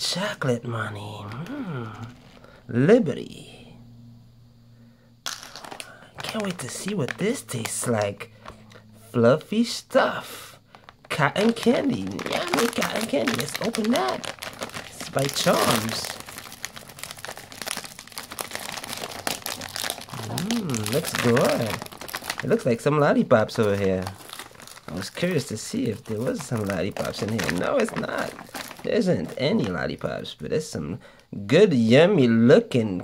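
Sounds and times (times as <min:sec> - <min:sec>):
plastic bag crinkling: 0:01.3 - 0:02.6, 0:05.3 - 0:08.7, 0:10.6 - 0:30.3.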